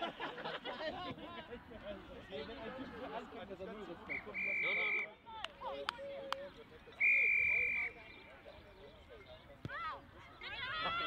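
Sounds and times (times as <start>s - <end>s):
referee whistle blast: 4.1s - 5.1s, 7.0s - 8.0s.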